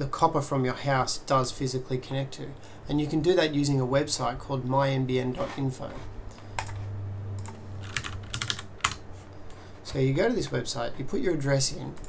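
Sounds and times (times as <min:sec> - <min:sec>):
low steady hum: 0:00.0 - 0:12.0
computer keyboard typing: 0:07.4 - 0:09.0.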